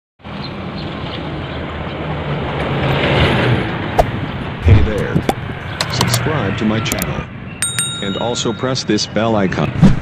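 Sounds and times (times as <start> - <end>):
road noise: 0.2 - 10.0.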